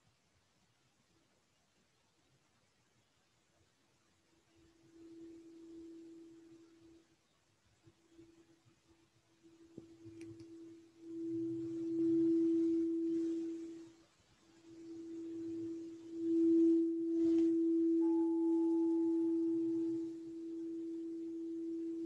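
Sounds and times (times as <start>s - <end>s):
crystal singing bowl tone: 4.5s - 7.1s, 9.4s - 22.0s
faint higher ring: 4.5s - 7.1s, 9.4s - 22.0s.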